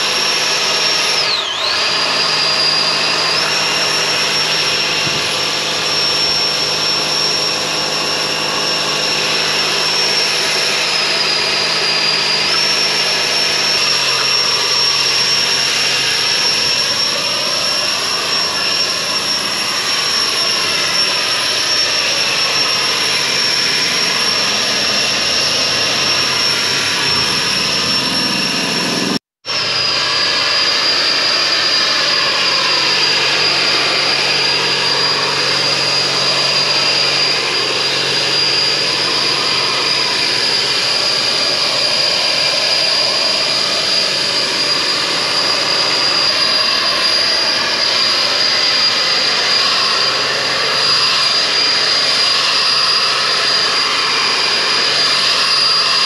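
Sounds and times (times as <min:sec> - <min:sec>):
spray blower rushing air: 0:00.0 - 0:56.0.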